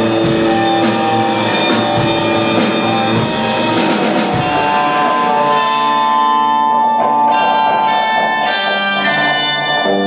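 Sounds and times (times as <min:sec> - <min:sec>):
rock band ringing chords: 0:00.0 - 0:10.0.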